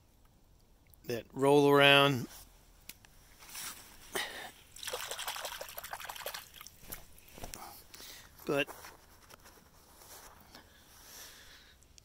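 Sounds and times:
small splashes and trickling: 0:04.7 - 0:07.2
water splash: 0:04.8 - 0:06.9.

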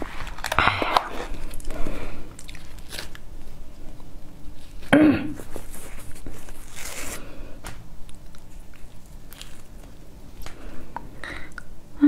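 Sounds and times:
cake tearing crackling rustle: 0:00.0 - 0:07.3, 0:08.0 - 0:10.6.

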